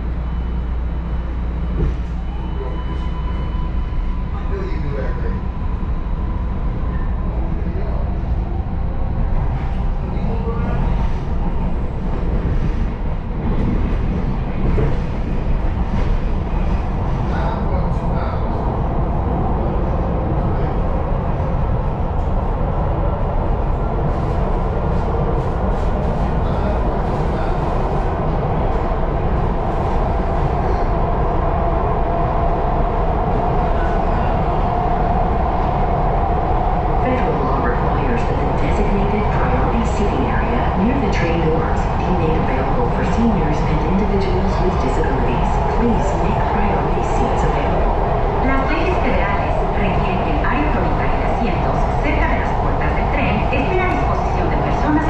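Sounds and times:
rumble of train wheels: 0.0s - 55.0s.

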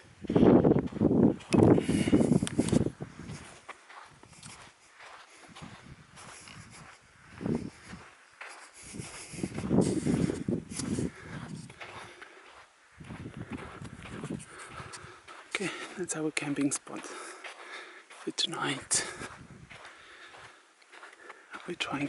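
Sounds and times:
footsteps thumps and scuffs: 0.3s - 16.0s, 16.6s - 22.0s.

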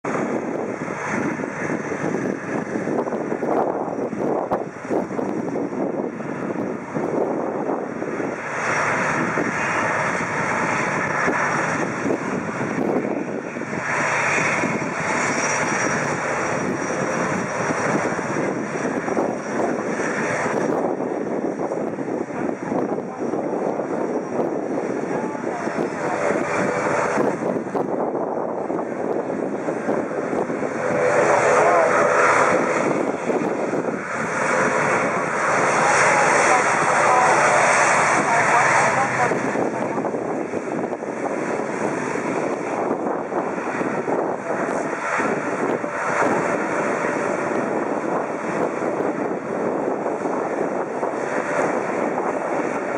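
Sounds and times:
turboprop engines droning: 0.0s - 52.9s.

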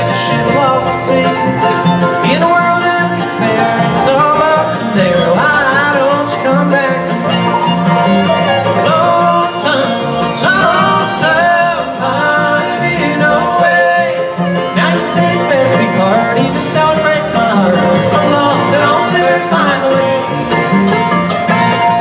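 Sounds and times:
bluegrass band playing: 0.0s - 22.0s.

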